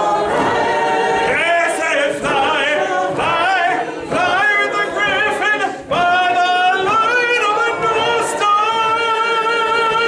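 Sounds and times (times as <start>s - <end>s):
man singing unaccompanied: 1.3s - 10.0s.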